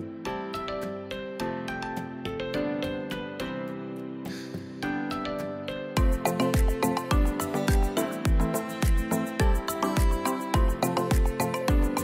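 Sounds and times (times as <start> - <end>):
plucked-string melody: 0.0 - 12.0.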